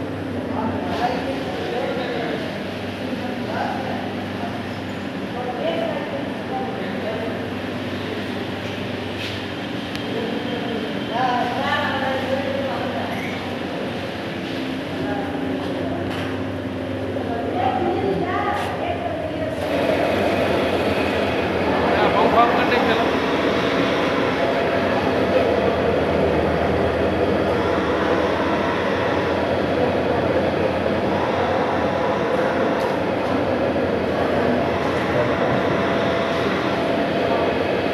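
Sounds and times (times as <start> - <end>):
hammer mill droning: 19.0 - 37.9.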